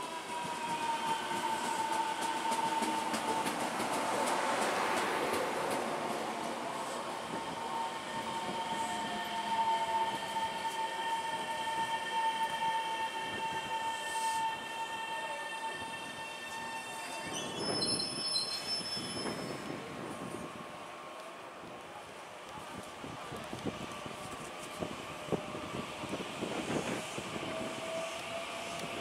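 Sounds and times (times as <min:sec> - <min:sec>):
high-pitched train squeal: 0:00.0 - 0:04.3, 0:06.6 - 0:20.5, 0:24.3 - 0:29.0
electric train slowing down: 0:00.0 - 0:29.0.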